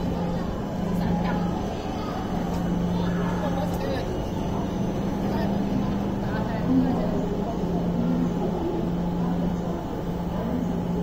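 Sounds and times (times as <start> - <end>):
distant voices: 0.0 - 11.0
electric train humming: 0.0 - 11.0.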